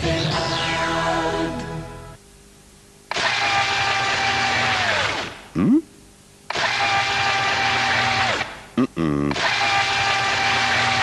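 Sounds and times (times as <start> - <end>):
electric blender whirring: 3.1 - 5.3, 6.5 - 8.6, 9.3 - 11.0.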